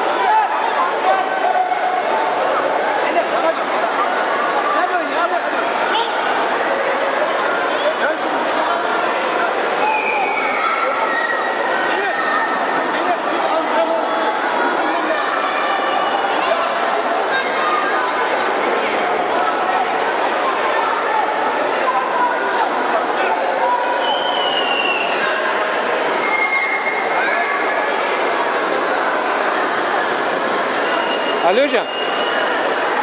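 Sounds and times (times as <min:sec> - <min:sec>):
crowd calling and shouting: 0:00.0 - 0:33.0.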